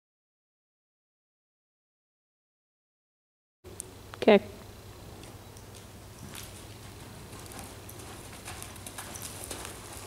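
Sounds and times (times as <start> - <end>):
horse hoofbeats on soft dirt: 5.2 - 10.0
person's footsteps: 6.2 - 10.0.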